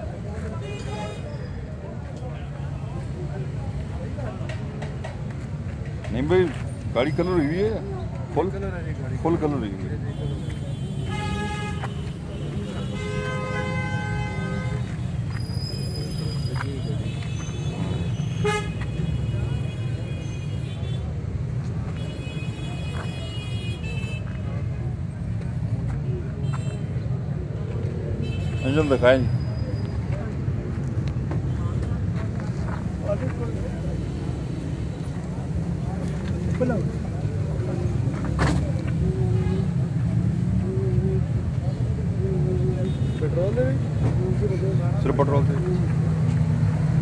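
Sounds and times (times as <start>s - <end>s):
vehicle horn toot: 17.0s - 21.0s.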